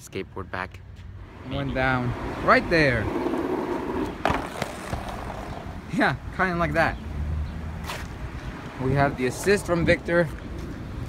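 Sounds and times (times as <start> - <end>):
small wheels rolling on asphalt: 1.6 - 5.9
board clacking: 3.3 - 5.6.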